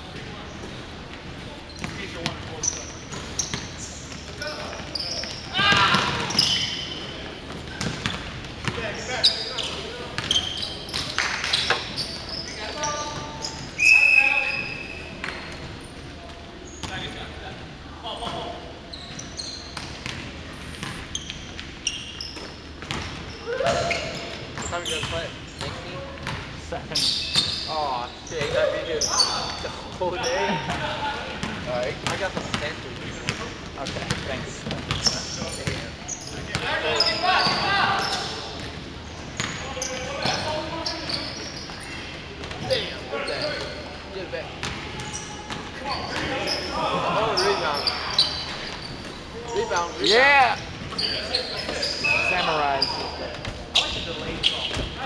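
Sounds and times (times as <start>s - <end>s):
players calling out: 0.0s - 15.6s, 33.8s - 55.0s.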